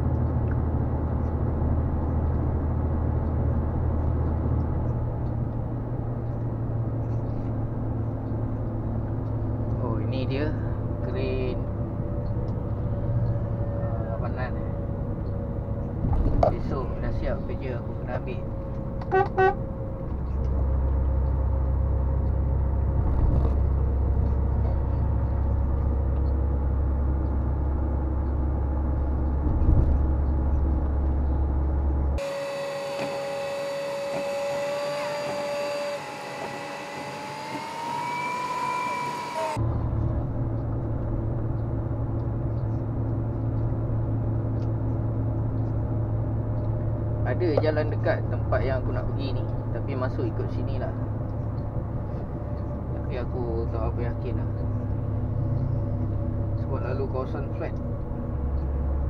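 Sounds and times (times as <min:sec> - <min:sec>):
truck diesel engine drone: 0:00.0 - 0:59.0
held rising tones: 0:30.2 - 0:39.9.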